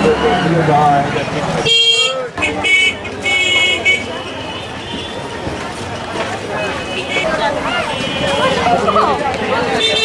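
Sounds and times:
people chattering: 0:00.0 - 0:10.0
street noise: 0:00.0 - 0:10.0.

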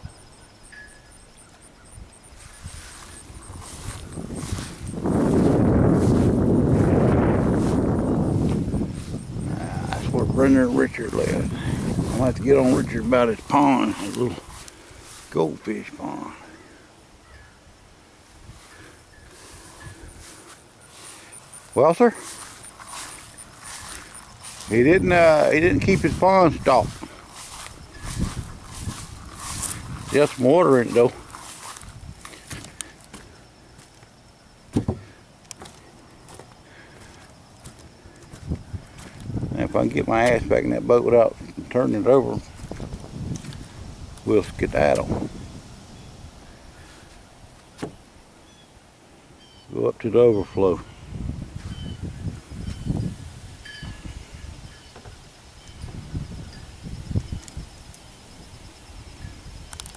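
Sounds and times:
faint bird chirps: 0:00.0 - 0:05.0, 0:16.3 - 0:17.7, 0:47.9 - 0:48.8, 0:49.4 - 0:51.0, 0:51.6 - 0:59.8
footsteps on wooden boards: 0:26.8 - 0:39.3, 0:47.1 - 0:48.0
loud thump: 0:34.7 - 0:35.1.

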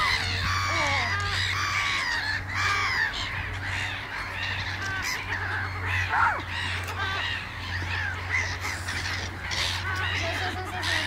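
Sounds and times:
gulls calling: 0:00.0 - 0:11.0.

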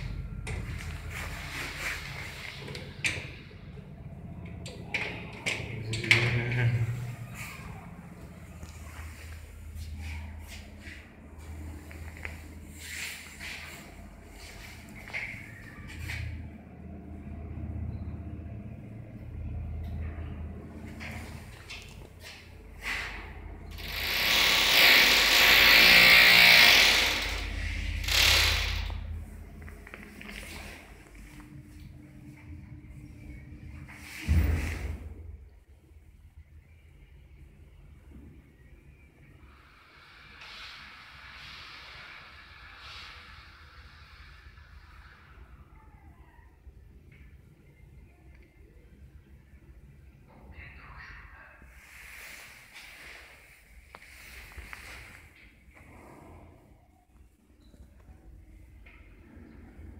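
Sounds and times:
lift doors scraping and sliding: 0:00.0 - 0:16.5, 0:20.6 - 0:29.4
low machinery hum: 0:00.0 - 0:59.9.

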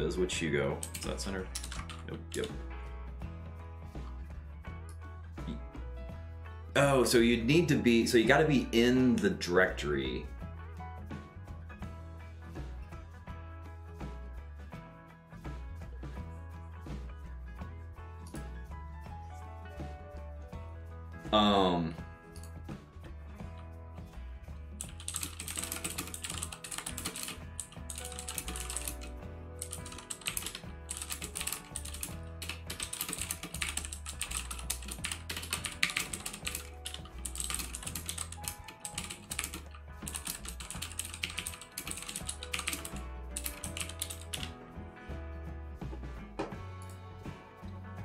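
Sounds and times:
background music with bass line: 0:00.0 - 0:48.0
rapid computer keyboard typing: 0:00.8 - 0:02.6, 0:24.8 - 0:44.5.

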